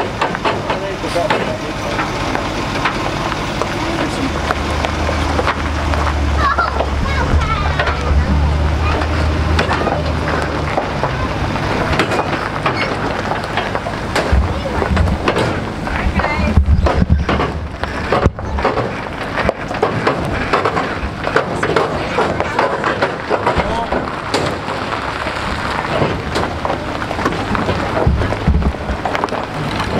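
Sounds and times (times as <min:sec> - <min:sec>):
clattering and rattling knocks: 0:00.0 - 0:29.9
indistinct voices: 0:00.0 - 0:29.9
truck engine running: 0:00.0 - 0:29.9.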